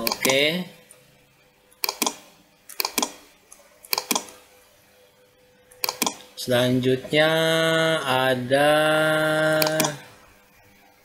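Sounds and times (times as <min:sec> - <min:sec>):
computer mouse clicks: 0:00.0 - 0:00.4, 0:01.8 - 0:04.4, 0:05.7 - 0:06.3, 0:09.4 - 0:10.0.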